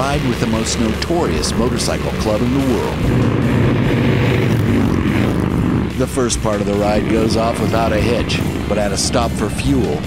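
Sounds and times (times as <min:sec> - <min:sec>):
motorcycle engines droning: 0:00.0 - 0:10.0.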